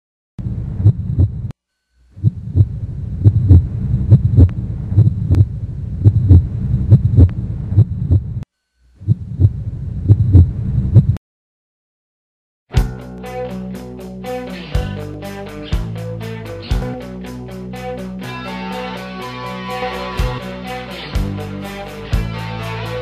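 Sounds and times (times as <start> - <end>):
heartbeat-like thumping: 0.4 - 1.5, 2.2 - 8.4, 9.0 - 11.2
low hum: 0.4 - 11.2.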